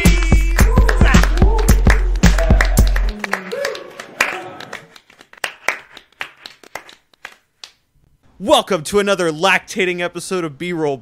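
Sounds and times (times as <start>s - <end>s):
podcast intro music: 0.0s - 3.2s
people clapping: 0.0s - 7.8s.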